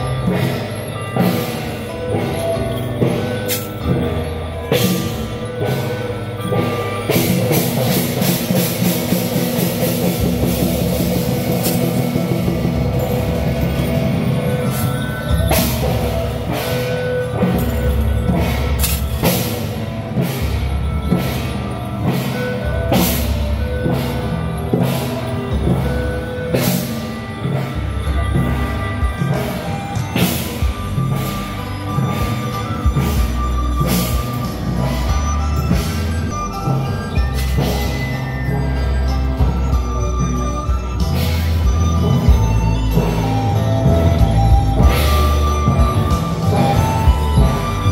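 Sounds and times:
drums beating: 0:00.0 - 0:47.9
metallic crashes and ringing: 0:00.0 - 0:47.9.

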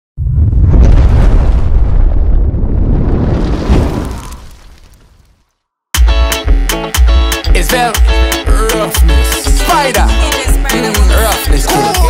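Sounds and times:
rumbling explosion boom: 0:00.2 - 0:05.4.

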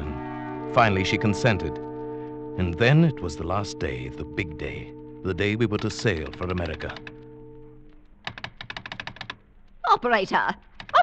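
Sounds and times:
held music chord: 0:00.0 - 0:08.1.

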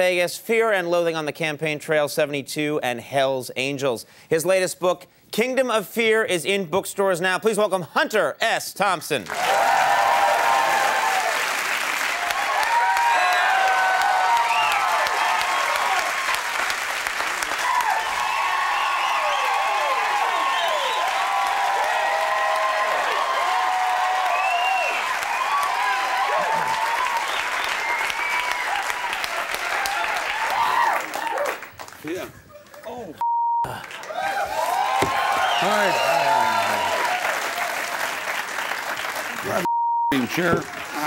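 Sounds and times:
audience applauding and cheering: 0:09.2 - 0:32.2, 0:33.7 - 0:41.0.

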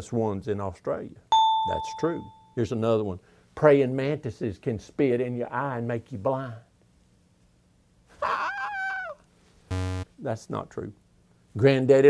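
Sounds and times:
man's mock cry of pain: 0:08.2 - 0:09.2.

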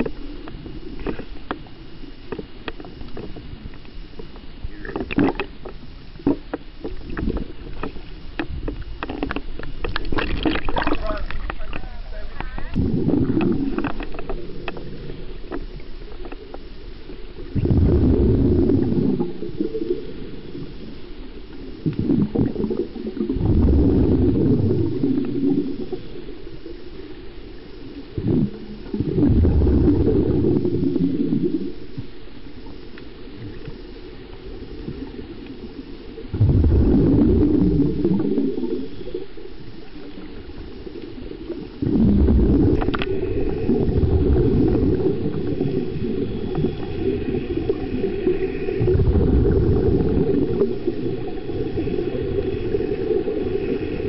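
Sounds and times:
underwater clicks and crackles: 0:00.0 - 0:54.0
underwater low rumble: 0:00.0 - 0:54.0.

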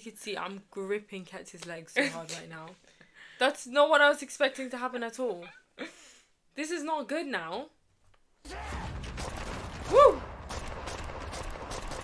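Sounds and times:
voice crying woo: 0:09.9 - 0:10.2.

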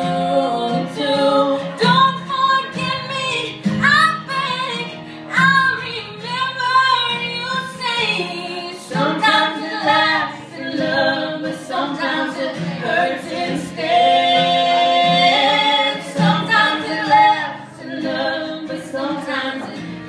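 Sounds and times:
woman singing a slow ballad: 0:00.0 - 0:19.9.

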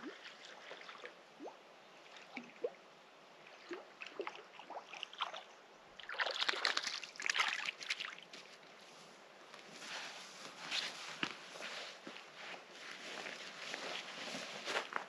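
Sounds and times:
water sloshing and splashing: 0:00.0 - 0:02.8, 0:03.4 - 0:08.7.

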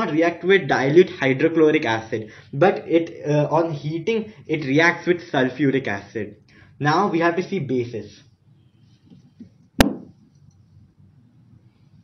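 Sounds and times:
eraser knocking on whiteboard: 0:09.1 - 0:10.2.

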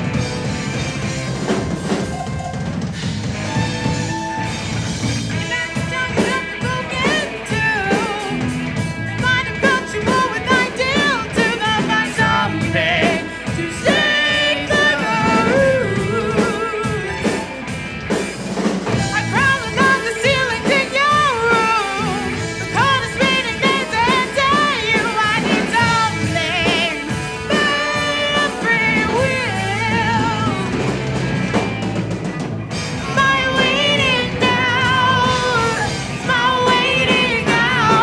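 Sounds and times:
bass guitar: 0:00.0 - 0:38.0
drum kit: 0:00.0 - 0:38.0
electric guitars: 0:00.0 - 0:38.0
singer with vibrato: 0:05.3 - 0:17.6, 0:19.0 - 0:31.0, 0:33.0 - 0:38.0.

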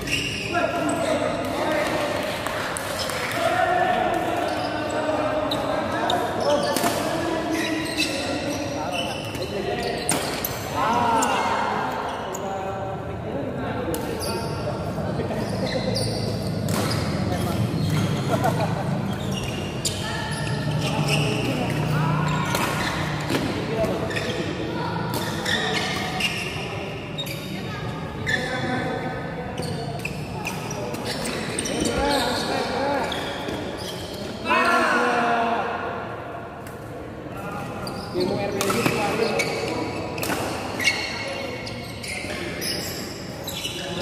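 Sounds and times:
murmur of voices: 0:00.0 - 0:44.0
rackets hitting shuttlecock: 0:16.6 - 0:17.2, 0:22.3 - 0:24.0, 0:38.6 - 0:39.2.

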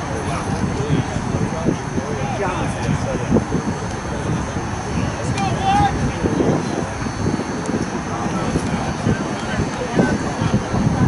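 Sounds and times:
players calling and talking: 0:00.0 - 0:11.0.

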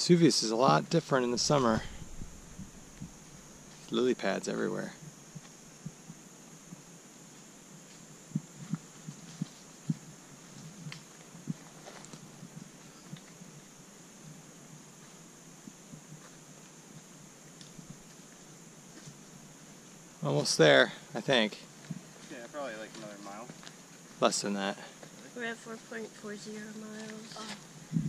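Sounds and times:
faint high hiss: 0:00.0 - 0:28.0
soft low thumps: 0:01.2 - 0:03.7, 0:05.0 - 0:06.9, 0:08.2 - 0:13.2, 0:27.8 - 0:28.0.

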